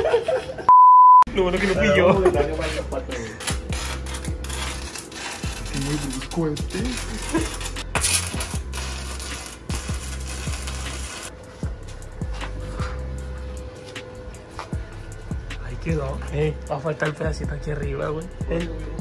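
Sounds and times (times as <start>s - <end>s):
welding arc crackling: 2.0s - 11.4s
background music with a beat: 5.4s - 19.0s.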